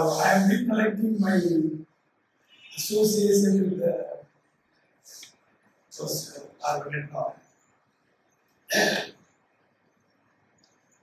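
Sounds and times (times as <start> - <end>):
man clearing his throat: 8.7 - 9.2.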